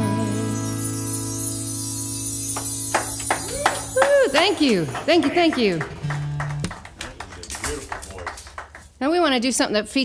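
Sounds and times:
people clapping: 0:02.5 - 0:09.2
low talk: 0:04.1 - 0:08.6.

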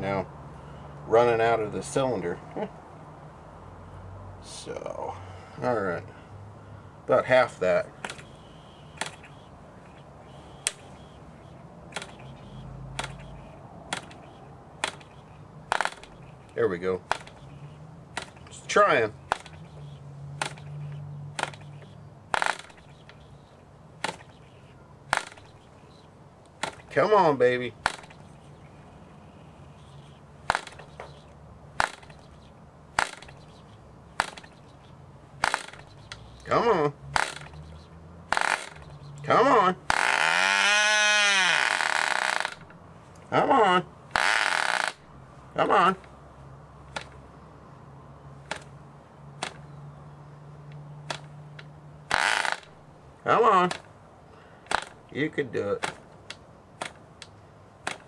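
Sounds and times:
propeller flick snaps: 0:07.9 - 0:10.0, 0:10.6 - 0:11.2, 0:11.9 - 0:24.5, 0:25.1 - 0:27.0, 0:27.8 - 0:28.6, 0:30.4 - 0:34.8, 0:35.4 - 0:36.5, 0:37.1 - 0:39.3, 0:46.9 - 0:47.2, 0:48.4 - 0:48.8, 0:49.4 - 0:49.7, 0:50.6 - 0:52.7, 0:53.6 - 0:54.0, 0:54.6 - 0:55.1, 0:55.8 - 0:58.0.

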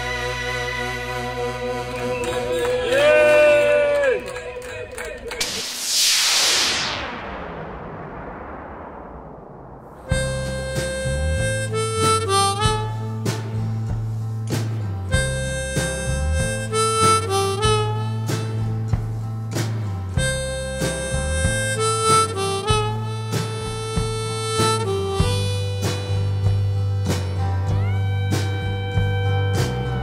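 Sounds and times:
bass line: 0:05.4 - 0:30.0
drum beats: 0:10.0 - 0:30.0
blues harmonica riff: 0:10.1 - 0:30.0.

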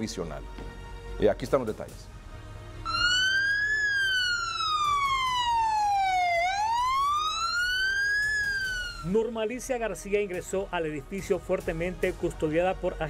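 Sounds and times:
police siren wailing: 0:02.9 - 0:09.1.

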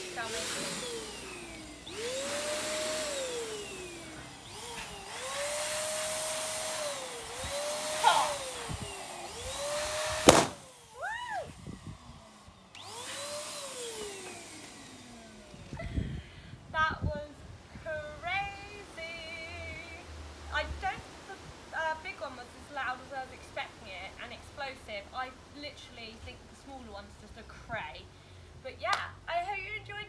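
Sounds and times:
balloon pump motor whining: 0:00.0 - 0:16.5
balloon bursting with bang: 0:10.2 - 0:10.6.

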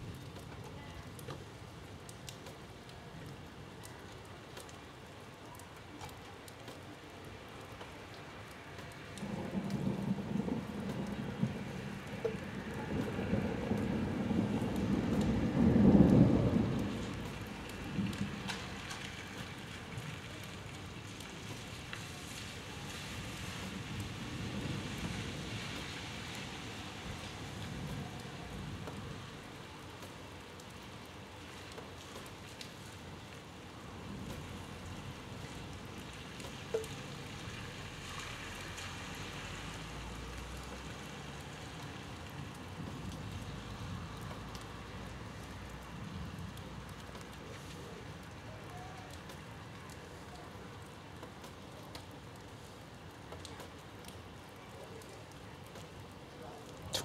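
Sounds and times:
steady rain: 0:00.0 - 0:57.0
rumbling thunderclap: 0:09.2 - 0:18.5.

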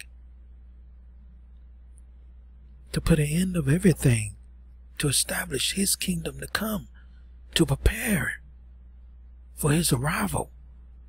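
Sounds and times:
low electrical hum: 0:00.0 - 0:11.0
man speaking: 0:02.9 - 0:04.4, 0:05.0 - 0:06.9, 0:07.5 - 0:08.4, 0:09.6 - 0:10.5.

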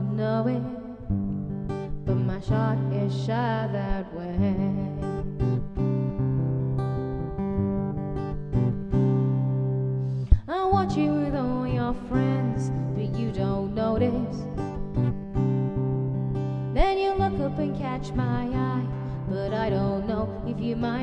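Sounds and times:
woman singing: 0:00.0 - 0:06.6, 0:10.2 - 0:15.4, 0:16.6 - 0:21.0
strummed acoustic guitar: 0:00.0 - 0:21.0.

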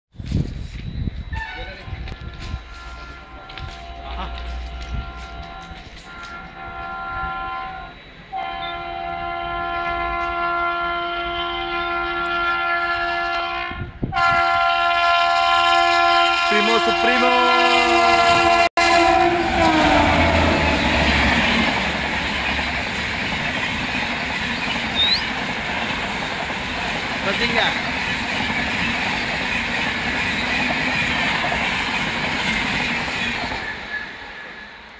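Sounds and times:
train wheels rushing on rail: 0:00.2 - 0:15.4, 0:16.6 - 0:34.9
locomotive air horn blasts: 0:01.3 - 0:22.1
clickety-clack of wheels: 0:21.3 - 0:34.1.

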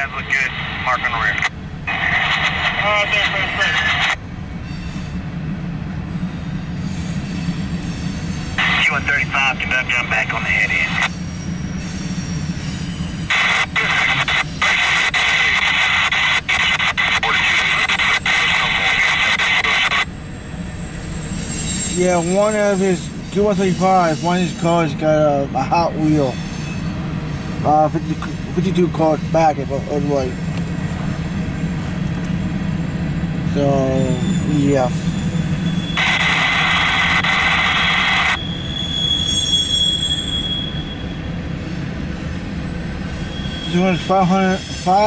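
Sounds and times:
scanner radio static hiss: 0:00.0 - 0:04.2, 0:08.6 - 0:11.1, 0:13.3 - 0:20.1, 0:36.0 - 0:38.4
freight cars rumbling past: 0:00.0 - 0:45.0.

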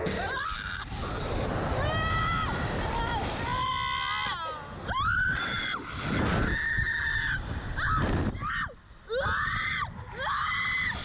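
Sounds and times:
girls screaming: 0:01.8 - 0:11.0.

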